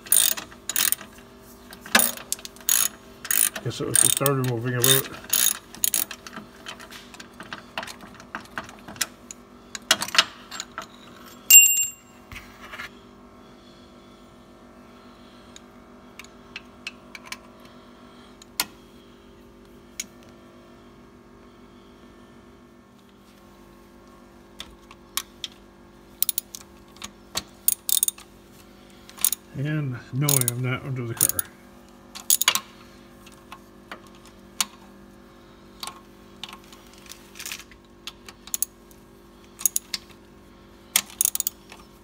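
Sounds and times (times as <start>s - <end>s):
ratchet wrench clicking: 0.0s - 1.1s, 2.0s - 6.4s, 26.2s - 26.6s, 27.7s - 28.2s, 29.2s - 29.4s, 30.3s - 30.6s, 31.2s - 31.5s, 32.2s - 32.6s, 38.4s - 38.7s, 39.6s - 40.0s, 41.0s - 41.6s
steady low hum: 0.0s - 42.0s
metallic ping: 11.5s - 12.1s.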